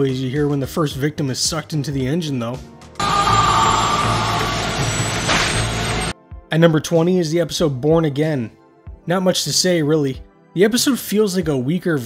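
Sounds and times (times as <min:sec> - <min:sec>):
high whine: 0:03.0 - 0:06.1.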